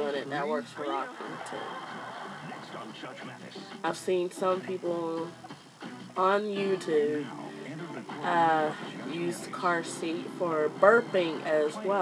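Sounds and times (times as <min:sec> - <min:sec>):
television voices and music: 0:00.0 - 0:12.0.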